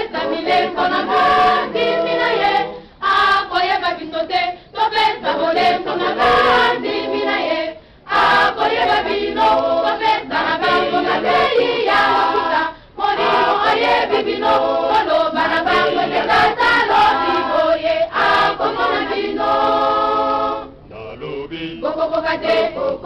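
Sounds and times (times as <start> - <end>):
choir singing: 0.0 - 23.0.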